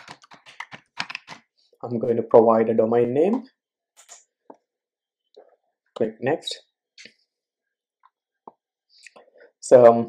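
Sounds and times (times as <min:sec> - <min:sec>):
fast typing on keyboard: 0:00.0 - 0:01.4.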